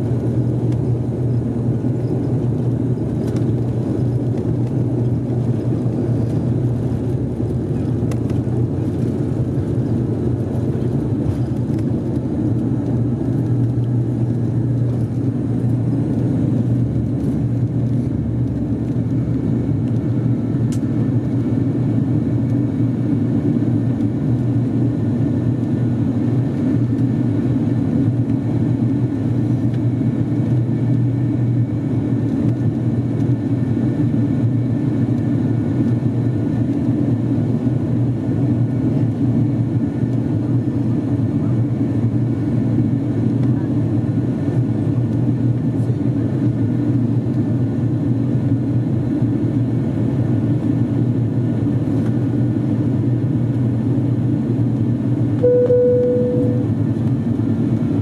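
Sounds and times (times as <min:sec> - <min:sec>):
turboprop cabin drone: 0:00.0 - 0:58.0.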